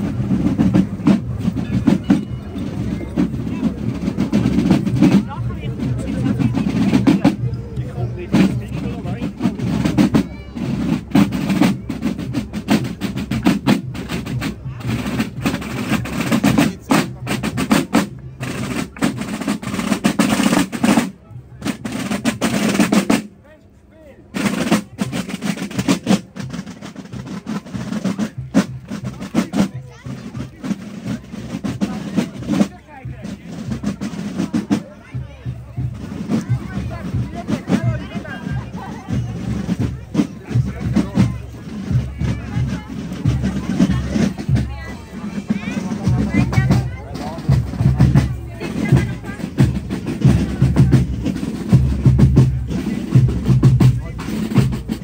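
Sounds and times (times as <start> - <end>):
piccolos playing march: 0.0 - 5.2, 35.8 - 55.0
side drums rolling: 0.0 - 55.0.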